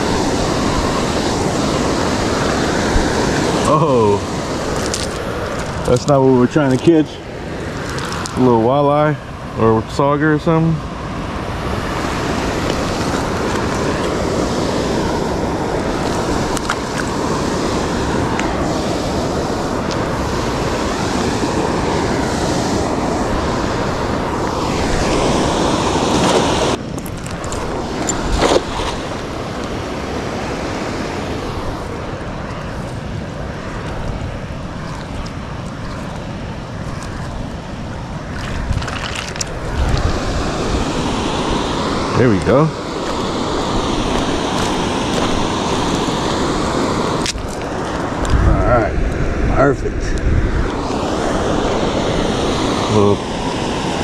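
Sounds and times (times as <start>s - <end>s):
waterfall rushing: 0.0s - 49.0s, 50.5s - 54.0s
wind buffeting microphone: 0.0s - 54.0s.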